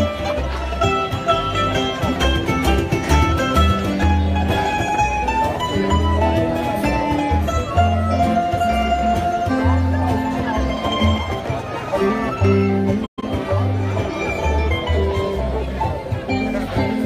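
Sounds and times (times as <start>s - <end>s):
guitars strumming and picking: 0.0s - 17.0s
upright bass: 0.0s - 17.0s.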